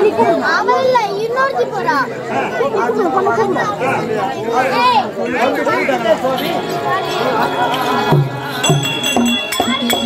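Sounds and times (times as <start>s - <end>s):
actors speaking dialogue: 0.0s - 8.7s.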